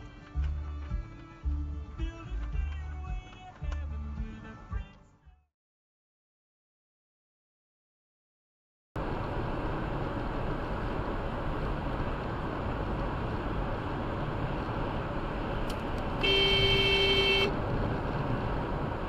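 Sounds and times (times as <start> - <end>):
road and engine noise: 0.0 - 5.3, 9.0 - 19.0
car horn honk: 16.2 - 17.6.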